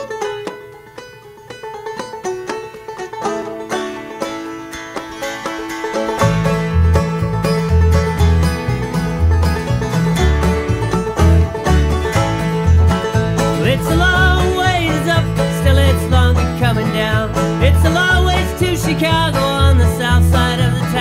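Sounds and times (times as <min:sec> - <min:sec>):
plucked banjo: 0:00.0 - 0:21.0
strings playing: 0:00.0 - 0:21.0
low bass notes: 0:06.0 - 0:21.0.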